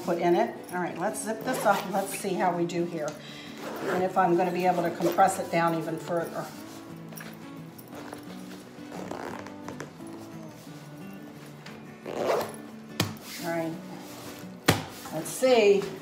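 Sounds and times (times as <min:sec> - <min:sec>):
background music: 0:00.0 - 0:16.0
zipper pulled in rasping strokes: 0:03.5 - 0:05.5, 0:07.9 - 0:10.7, 0:12.0 - 0:12.6.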